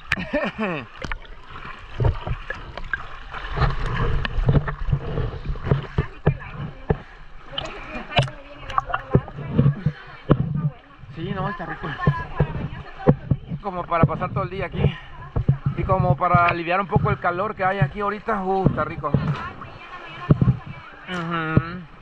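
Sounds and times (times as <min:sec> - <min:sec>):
water sloshing and lapping: 0:00.0 - 0:22.0
water splashes: 0:00.0 - 0:22.0
water knocking on camera housing: 0:01.0 - 0:20.8.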